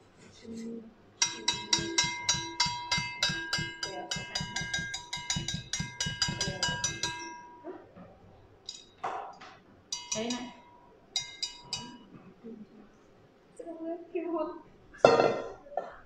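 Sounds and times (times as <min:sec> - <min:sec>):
wire whisk knocking metal bowl: 0:01.2 - 0:07.6, 0:09.9 - 0:12.0
bowl ringing: 0:01.2 - 0:07.7, 0:09.9 - 0:12.1.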